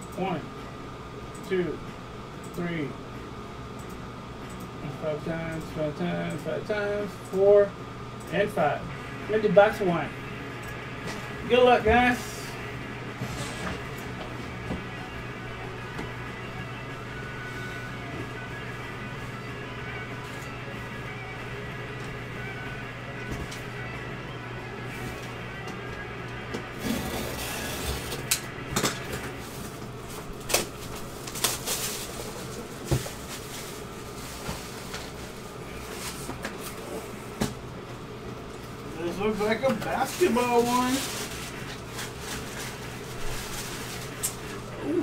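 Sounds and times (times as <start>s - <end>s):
cardboard and paper rustling: 30.5s - 36.8s, 39.8s - 44.6s.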